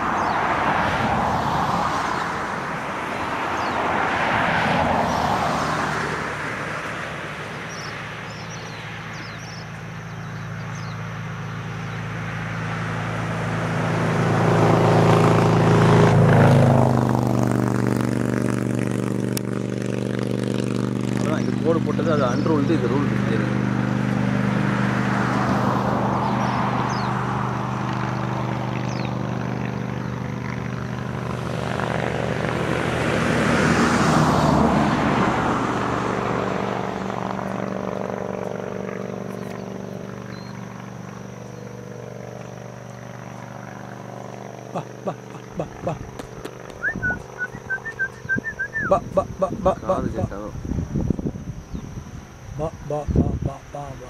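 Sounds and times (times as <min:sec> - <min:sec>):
vehicle engine running: 0:04.7 - 0:54.0
steady low hum: 0:36.6 - 0:54.0.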